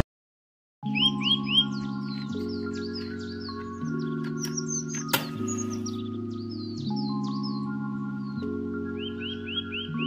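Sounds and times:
birds chirping: 0:00.8 - 0:10.0
soft music of held chords: 0:00.8 - 0:10.0.

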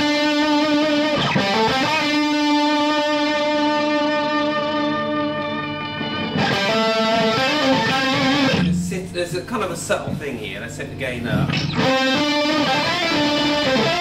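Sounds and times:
electric guitar chords: 0:00.0 - 0:09.4, 0:11.2 - 0:14.0.

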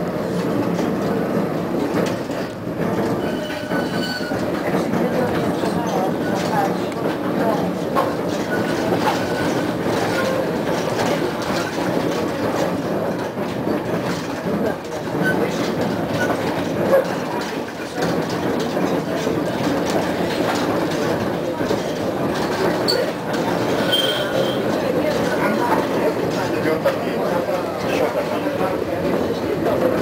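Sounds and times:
tram rolling rumble: 0:00.0 - 0:30.0
wheels clicking over rail joints: 0:00.2 - 0:30.0
faint wheel squeals: 0:03.2 - 0:04.4, 0:23.8 - 0:24.7.

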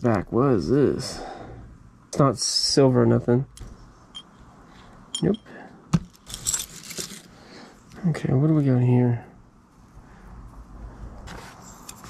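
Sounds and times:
metal jewelry jingling: 0:06.1 - 0:07.3.

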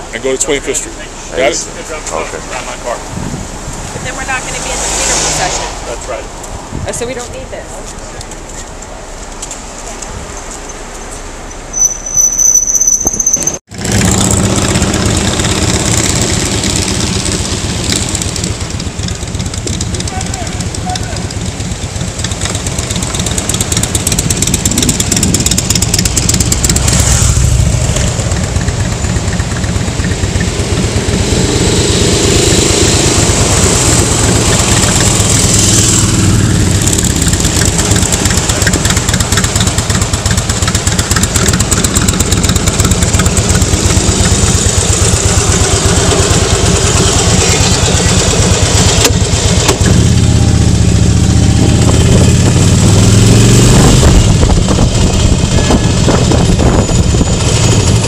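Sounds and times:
wind rush on microphone: 0:02.9 - 0:07.6, 0:51.3 - 0:58.0
motorcycle engine running: 0:13.7 - 0:58.0.

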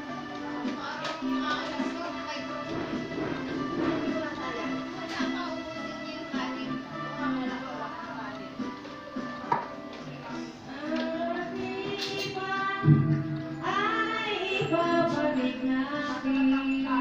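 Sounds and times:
musical accompaniment: 0:00.0 - 0:17.0
woman singing wavering notes: 0:13.6 - 0:17.0.

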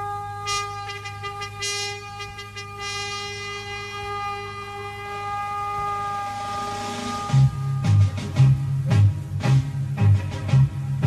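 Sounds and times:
military band wind chord: 0:00.0 - 0:10.0
swell of noise: 0:02.0 - 0:11.0.

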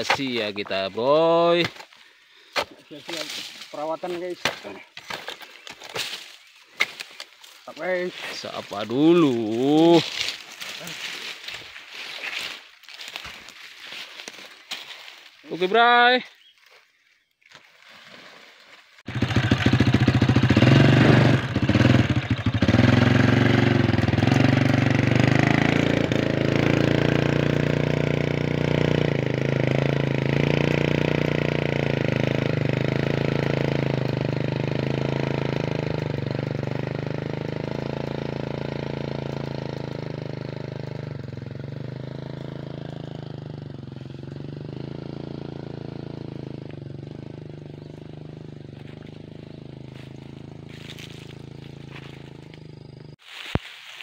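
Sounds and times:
motorcycle engine running: 0:06.0 - 0:15.8, 0:19.0 - 0:53.5.

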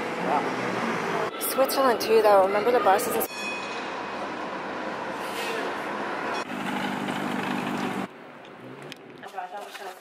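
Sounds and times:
rush of street traffic: 0:00.0 - 0:09.3.

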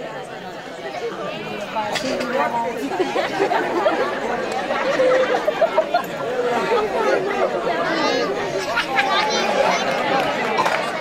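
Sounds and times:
overlapping chatter of voices: 0:00.0 - 0:11.0.

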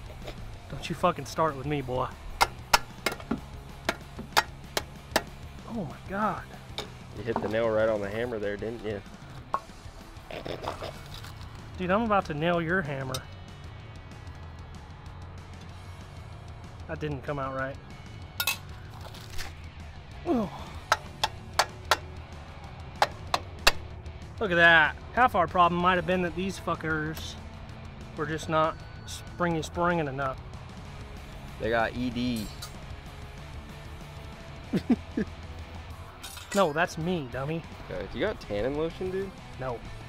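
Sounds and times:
background music: 0:00.0 - 0:40.0
screwdriver tapping against metal: 0:02.4 - 0:05.3, 0:20.9 - 0:22.1, 0:23.0 - 0:23.5.

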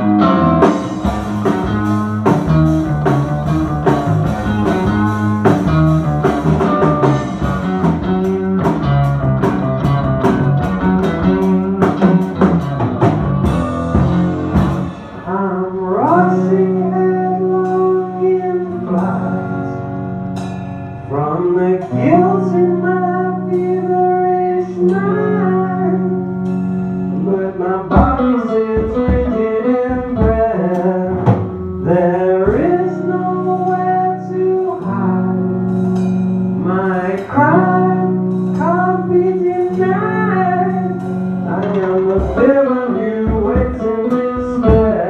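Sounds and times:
bass guitar: 0:00.0 - 0:45.0
drums: 0:00.0 - 0:45.0
electric guitar: 0:00.0 - 0:45.0
man singing: 0:06.1 - 0:07.7, 0:15.2 - 0:20.0, 0:21.0 - 0:26.4, 0:27.1 - 0:35.7, 0:36.6 - 0:45.0.

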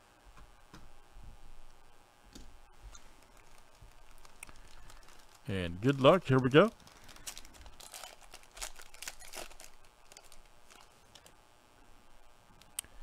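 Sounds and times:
handling of cards: 0:02.8 - 0:11.4
plastic wrapper tearing and crinkling: 0:02.9 - 0:11.4.

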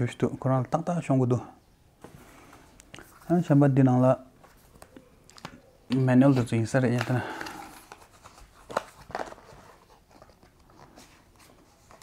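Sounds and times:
paper rustle: 0:06.2 - 0:12.0.

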